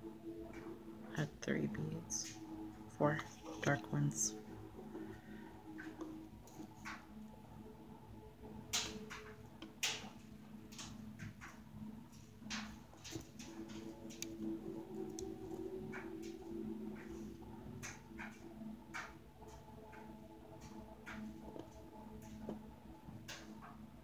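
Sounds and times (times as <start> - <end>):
faint low hum: 0.0 - 24.0.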